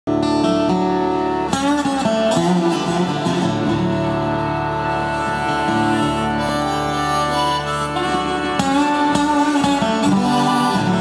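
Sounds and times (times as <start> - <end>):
strummed acoustic guitar: 0.1 - 11.0
concertina chords: 0.6 - 11.0.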